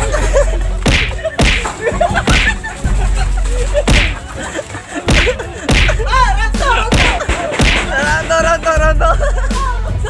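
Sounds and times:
boxing glove punches on body: 0.9s - 1.6s, 5.1s - 6.0s.

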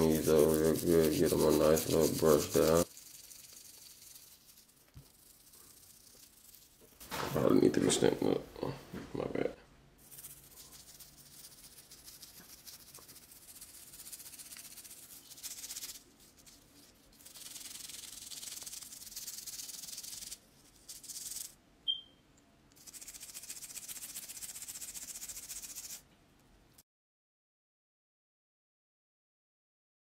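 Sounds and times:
toothbrush scrubbing: 0.0s - 7.2s, 10.0s - 22.0s, 22.7s - 26.0s
brief high squeak: 21.9s - 22.2s.

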